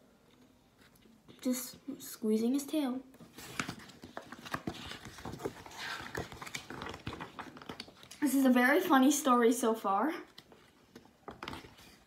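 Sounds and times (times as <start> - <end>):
light clicks of book handling: 3.2 - 8.2
paper rustling: 3.2 - 8.3, 10.3 - 12.0.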